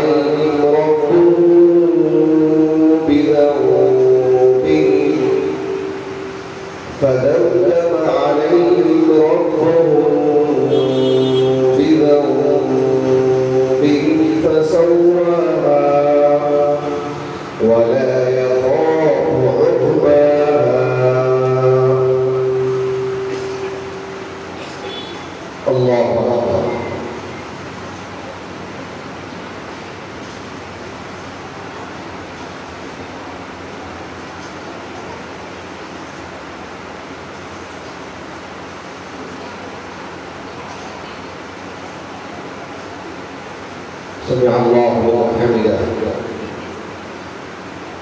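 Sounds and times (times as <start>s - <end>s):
man chanting prayer: 0.0s - 27.5s, 44.2s - 47.1s.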